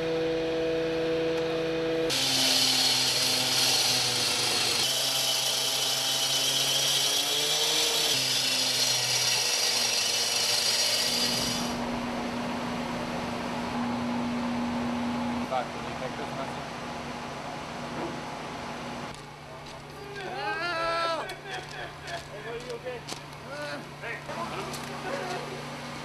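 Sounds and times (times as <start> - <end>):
saw grinding screech on metal: 2.1 - 11.8
saw motor running: 2.1 - 11.9.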